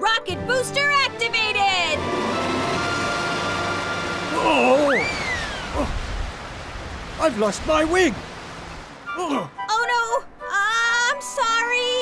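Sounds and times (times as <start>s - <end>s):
background music: 0.0s - 5.1s, 9.1s - 12.0s
rocket booster rushing: 1.7s - 8.9s.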